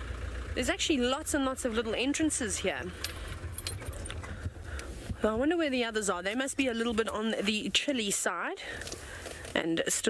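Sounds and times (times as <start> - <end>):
vehicle engine rumbling: 0.0 - 10.0
light clicks and rattles: 2.9 - 4.9.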